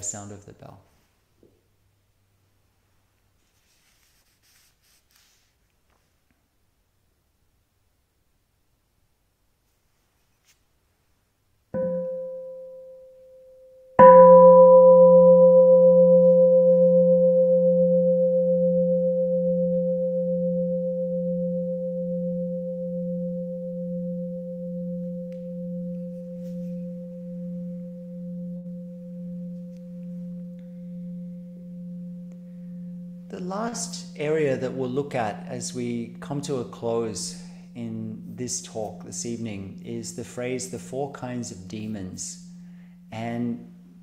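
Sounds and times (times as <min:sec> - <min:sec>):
meditation bell ringing: 0:11.8 - 0:44.0.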